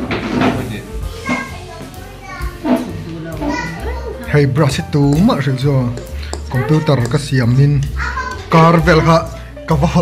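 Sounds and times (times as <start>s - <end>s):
child's voice: 1.2s - 4.2s, 7.9s - 8.5s.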